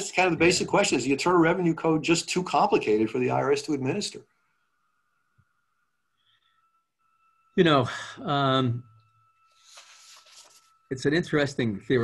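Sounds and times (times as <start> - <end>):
faint steady electronic tone: 0.0 - 12.0.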